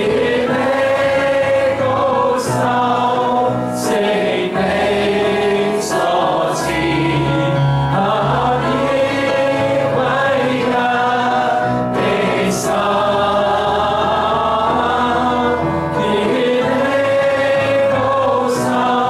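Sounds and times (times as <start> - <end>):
choir voices: 0.0 - 19.0
played-back music: 0.0 - 19.0.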